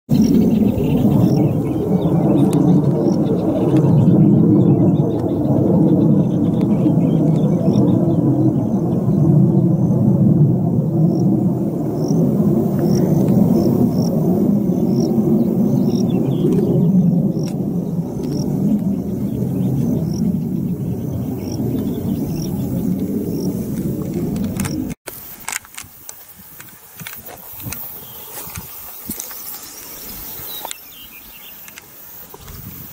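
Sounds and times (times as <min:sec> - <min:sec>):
wind buffeting microphone: 0:00.1 - 0:32.9.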